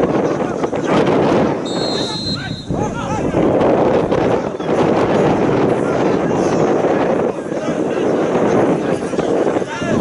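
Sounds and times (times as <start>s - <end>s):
crowd chatter: 0.0s - 10.0s
referee's whistle blast: 1.6s - 2.7s.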